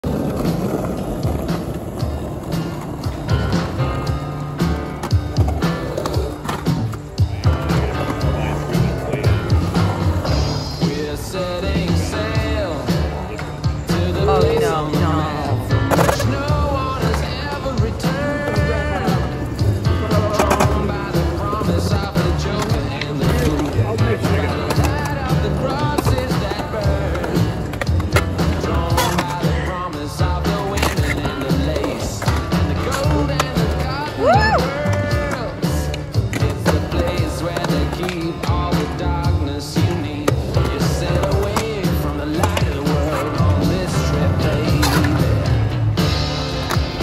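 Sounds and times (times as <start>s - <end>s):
skateboard wheels rolling on asphalt: 0.0s - 47.0s
music with regular beat: 0.1s - 47.0s.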